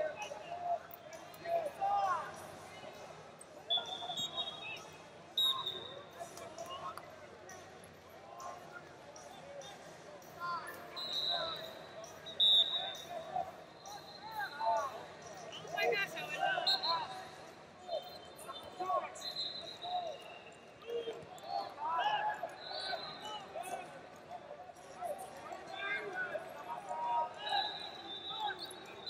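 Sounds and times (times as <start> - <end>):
voices talking and calling out: 0.0 - 29.0
short high whistle tones: 3.7 - 4.8, 5.4 - 6.0, 10.9 - 13.2, 18.1 - 21.2, 27.5 - 29.0.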